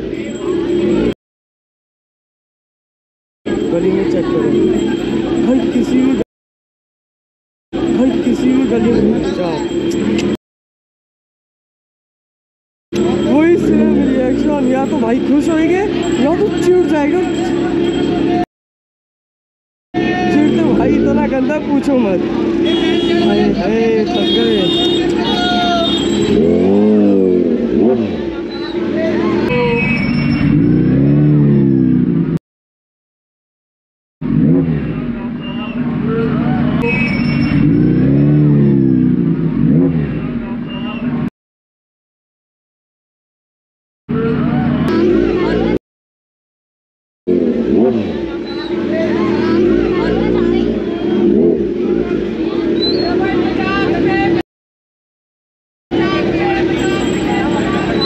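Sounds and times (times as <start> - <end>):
market crowd voices: 0.0 - 1.2, 3.5 - 6.2, 7.8 - 10.4, 12.9 - 18.5, 20.0 - 32.2, 34.5 - 41.3, 44.1 - 45.8, 47.3 - 54.4, 55.9 - 58.0
motorcycle engine revving: 3.5 - 6.2, 7.8 - 10.4, 12.9 - 18.4, 20.0 - 32.4, 34.2 - 41.3, 44.1 - 45.8, 47.3 - 54.4.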